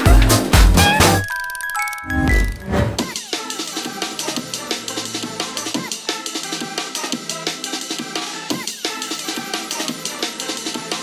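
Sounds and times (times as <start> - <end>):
bell-like chime jingle: 0.8 - 3.2.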